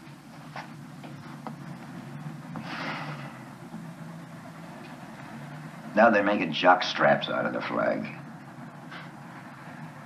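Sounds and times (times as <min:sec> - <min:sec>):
quiet low hum: 0:00.0 - 0:10.0.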